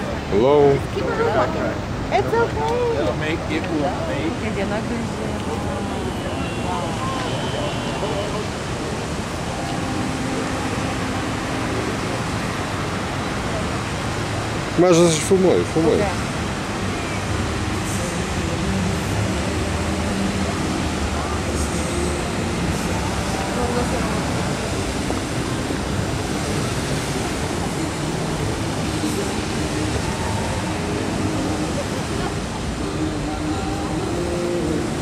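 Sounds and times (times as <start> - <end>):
water jets spraying and falling: 0.0 - 35.0.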